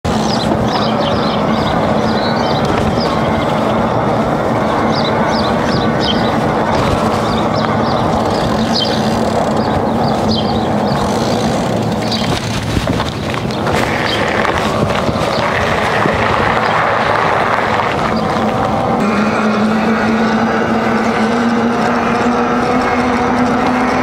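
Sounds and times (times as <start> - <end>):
birds chirping: 0.0 - 24.0
tyre noise on asphalt: 0.0 - 24.0
wind noise: 0.0 - 24.0
low steady hum: 0.1 - 24.0.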